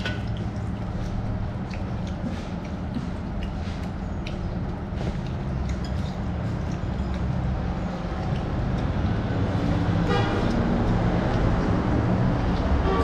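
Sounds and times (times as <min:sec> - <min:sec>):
road traffic rumble: 0:00.0 - 0:13.0
vehicle horn tooting: 0:10.0 - 0:10.6, 0:12.8 - 0:13.0.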